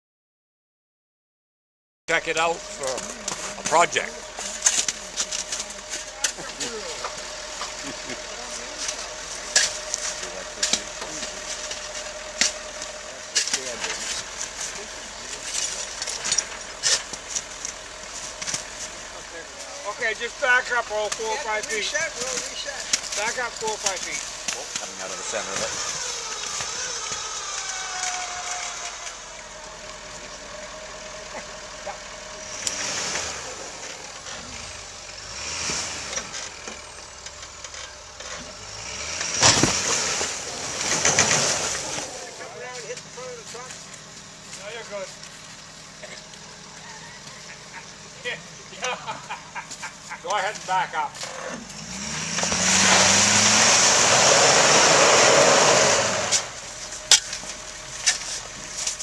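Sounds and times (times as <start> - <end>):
pickup truck engine running: 2.1 - 59.0.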